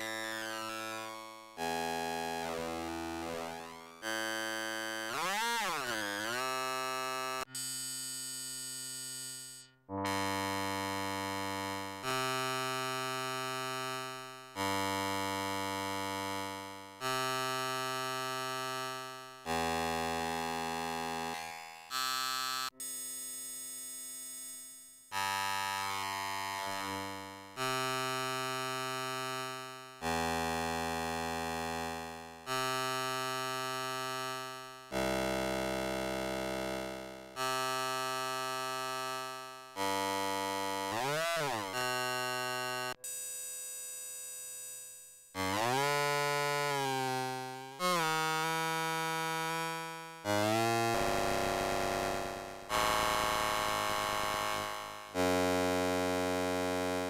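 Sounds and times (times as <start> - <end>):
held synthesizer chords: 49.8 - 55.4.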